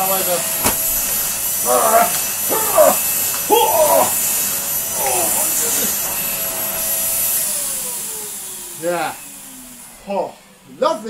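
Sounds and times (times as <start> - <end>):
vacuum cleaner hiss and whine: 0.0 - 11.0.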